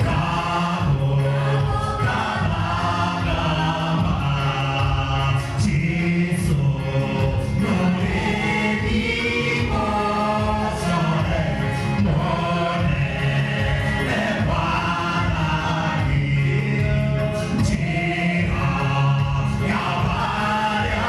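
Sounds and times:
choir singing a hymn: 0:00.0 - 0:21.0
lead singer over sound system: 0:00.0 - 0:21.0.

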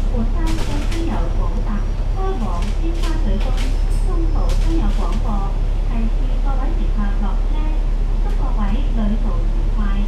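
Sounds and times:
bus engine drone: 0:00.0 - 0:10.0
woman talking: 0:00.0 - 0:10.0.

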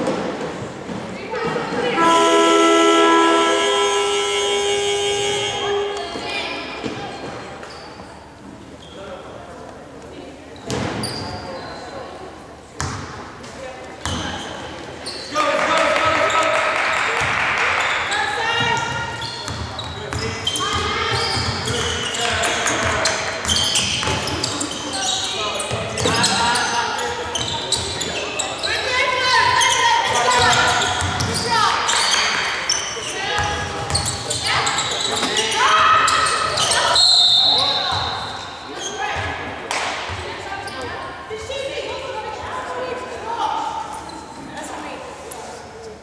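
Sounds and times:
players calling out: 0:01.9 - 0:08.3
referee whistle: 0:02.0 - 0:06.2, 0:36.2 - 0:38.4
basketball bouncing on wooden court: 0:12.8 - 0:13.1, 0:18.6 - 0:24.6, 0:30.3 - 0:32.1.

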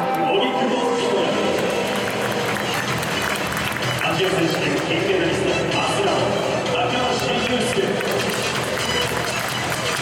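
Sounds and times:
echoing public address voice: 0:00.0 - 0:03.0
crowd noise: 0:00.0 - 0:10.0.

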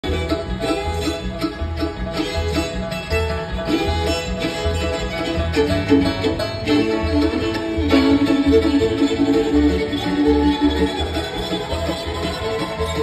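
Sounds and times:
banjo: 0:00.0 - 0:13.0
fiddle: 0:00.0 - 0:13.0
guitar: 0:00.0 - 0:13.0
mandolin: 0:00.0 - 0:13.0.

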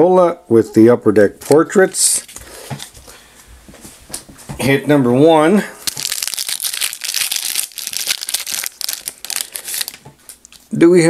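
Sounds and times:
foil wrapper crinkling: 0:05.8 - 0:10.7.

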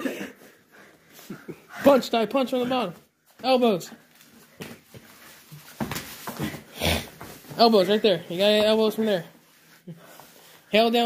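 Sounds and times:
heavy breathing: 0:00.0 - 0:02.2, 0:06.3 - 0:08.3, 0:09.3 - 0:10.7
scuffling on foam mats: 0:02.8 - 0:11.0.

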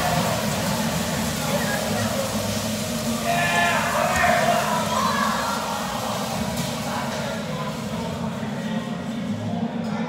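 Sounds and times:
bumper cars rumbling: 0:00.0 - 0:09.6.

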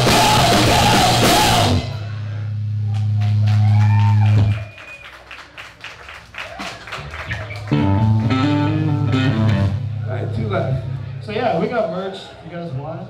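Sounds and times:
whistling feedback tone: 0:03.8 - 0:05.2
electric guitar note ringing: 0:07.7 - 0:10.4
guitar chord struck: 0:07.8 - 0:10.2.

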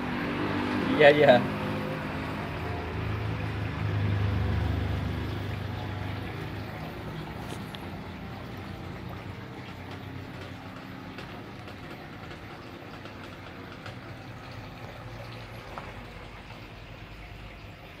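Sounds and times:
running water: 0:00.0 - 0:18.0.

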